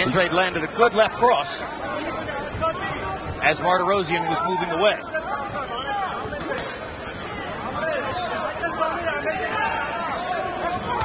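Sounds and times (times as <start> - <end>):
crowd babble and calling out: 0.0 - 11.0.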